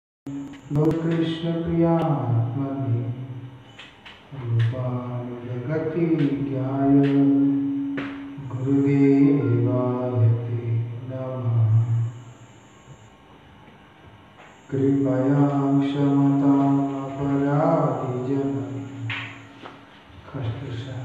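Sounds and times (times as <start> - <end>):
man chanting prayers: 0.6 - 3.5, 4.3 - 12.3, 14.7 - 19.6, 20.2 - 21.0.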